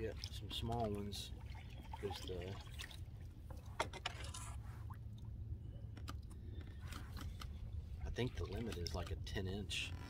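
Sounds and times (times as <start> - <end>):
kayak paddle knocks and clicks: 8.4 - 10.0.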